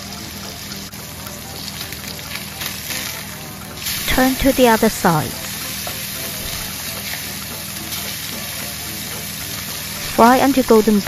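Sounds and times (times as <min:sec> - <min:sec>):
chicken sizzling in a skillet: 0:00.0 - 0:11.0.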